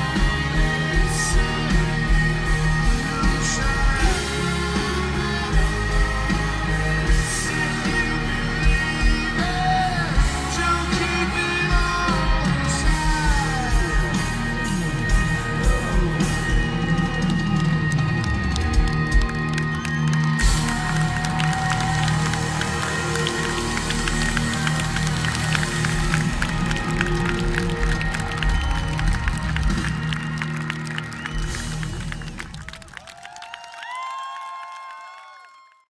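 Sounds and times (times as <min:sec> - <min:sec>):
live rock band with electric guitars: 0:00.0 - 0:33.2
audience cheering and yelling: 0:00.0 - 0:35.9.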